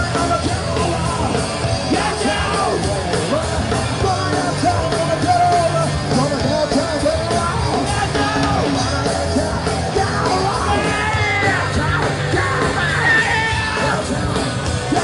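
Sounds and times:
punk band playing live: 0.0s - 15.0s.

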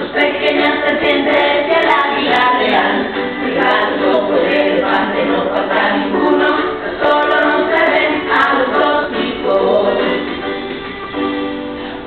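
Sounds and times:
group singing a cappella: 0.0s - 10.5s.

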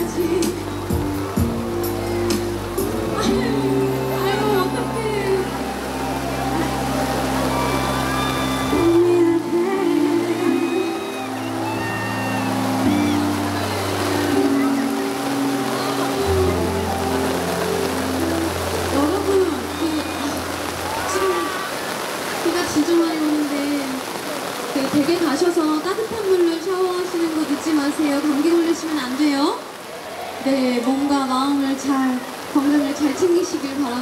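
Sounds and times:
live ballad music: 0.0s - 25.5s
rain hiss: 0.0s - 34.0s.

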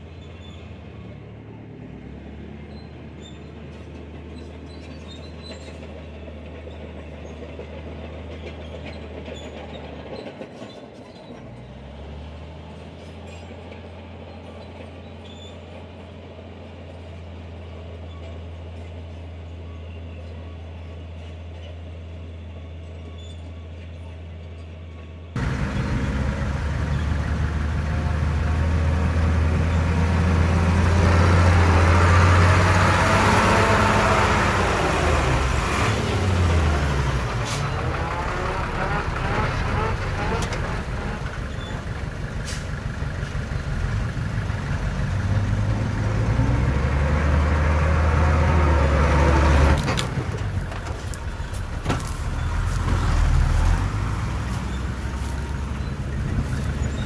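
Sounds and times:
heavy diesel engines working: 0.0s - 57.0s.

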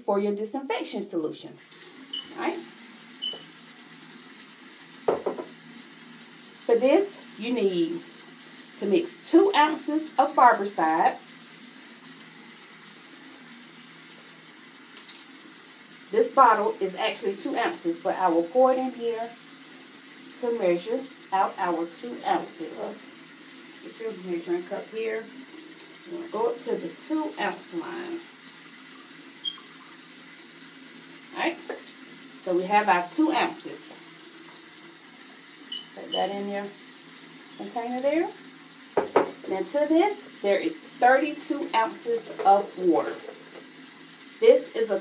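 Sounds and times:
high squeak: 35.7s - 36.0s.

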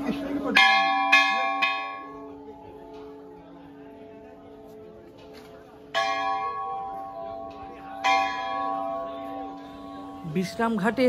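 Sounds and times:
large bell ringing: 0.0s - 5.1s, 5.7s - 11.0s.

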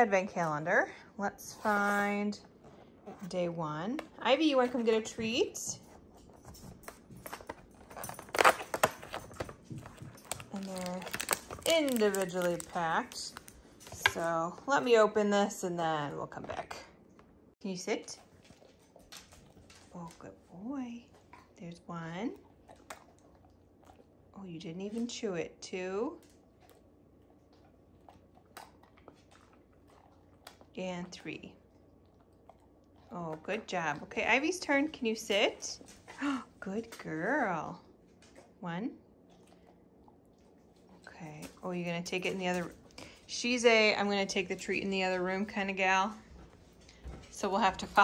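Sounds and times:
cardboard tearing and crackling: 10.2s - 12.7s.

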